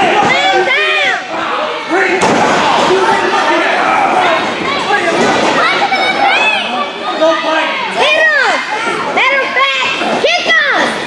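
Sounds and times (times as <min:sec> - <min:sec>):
crowd shouting and chattering: 0:00.0 - 0:11.0
wrestlers impact smack: 0:02.2 - 0:03.0.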